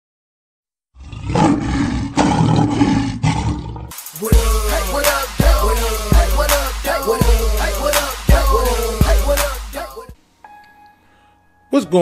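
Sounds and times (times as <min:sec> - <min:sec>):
lion roaring: 0:01.0 - 0:03.9.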